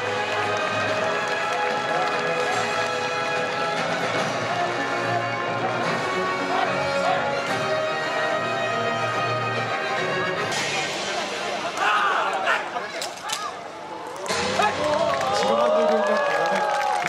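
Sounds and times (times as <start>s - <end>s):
military band music: 0.0s - 11.7s
faint crowd voices: 0.0s - 17.0s.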